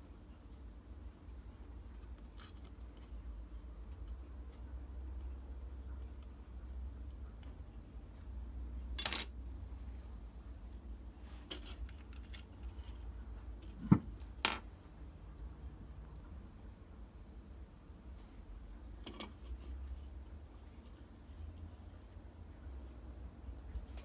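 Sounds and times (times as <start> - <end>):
sharp metallic clink: 9.0 - 9.4.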